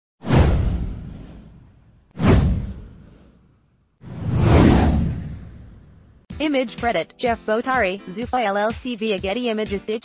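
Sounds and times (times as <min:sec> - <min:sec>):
whoosh: 0:00.2 - 0:06.3
deep rumble: 0:00.3 - 0:03.4, 0:04.0 - 0:06.3.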